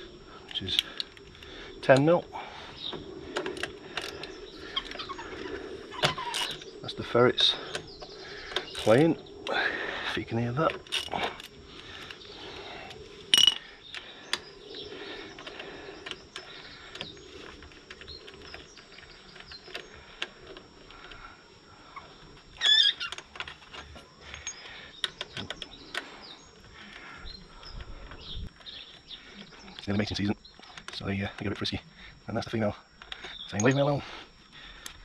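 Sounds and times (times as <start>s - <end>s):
ferrets squealing: 4.1s - 7.7s, 21.9s - 23.2s
hand tools clicking on metal: 7.4s - 9.2s, 10.6s - 12.1s, 13.3s - 14.5s, 33.0s - 33.9s.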